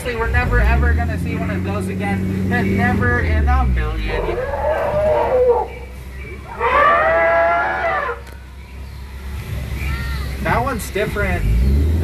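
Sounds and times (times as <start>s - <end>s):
elephant calls: 4.0s - 8.3s.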